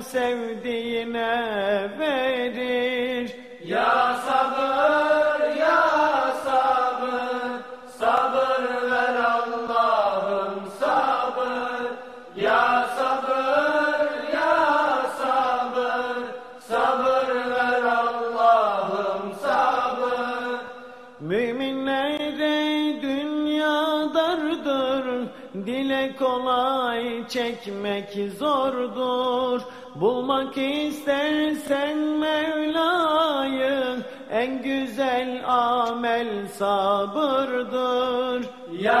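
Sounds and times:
voices singing a hymn unaccompanied: 0:00.0 - 0:26.0, 0:27.0 - 0:39.0.

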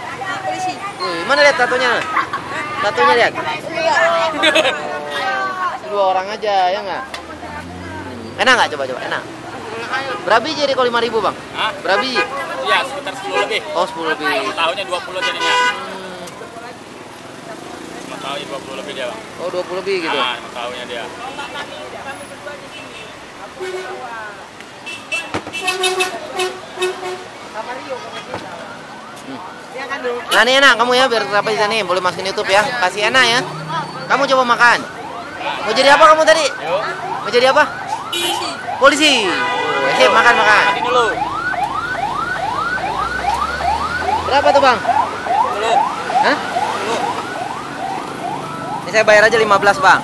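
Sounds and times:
street noise: 0:00.0 - 0:50.0
vehicle horn toots: 0:15.1 - 0:16.0, 0:24.8 - 0:27.3, 0:38.1 - 0:41.1
electronic siren warbling: 0:33.2 - 0:39.3, 0:39.9 - 0:50.0.

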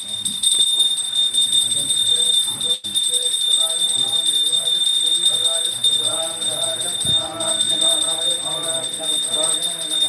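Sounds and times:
bells jingling rapidly: 0:00.0 - 0:10.0
voices murmuring: 0:00.4 - 0:10.0.

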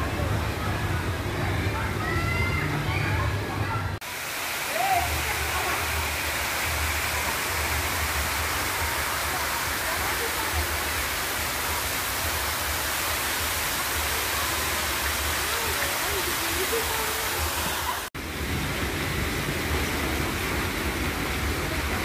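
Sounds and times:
running water rushing: 0:00.0 - 0:22.0.

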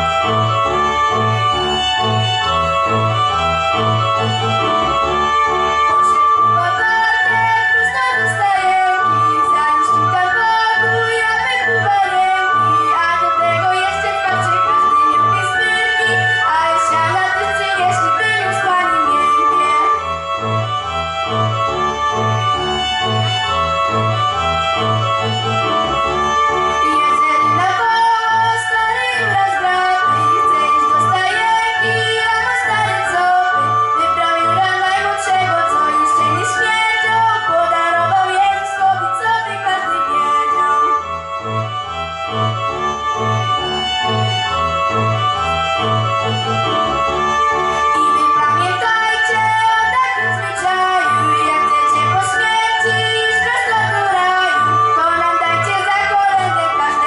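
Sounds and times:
backing music with low beat: 0:00.0 - 0:06.7, 0:20.0 - 0:34.0, 0:40.6 - 0:48.1
girl singing a carol: 0:05.9 - 0:20.0, 0:26.8 - 0:40.7, 0:48.0 - 0:57.0.

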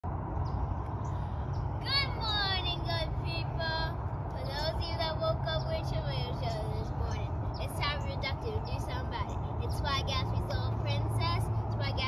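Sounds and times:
steady low rumble: 0:00.0 - 0:12.0
girl talking: 0:01.8 - 0:12.0.

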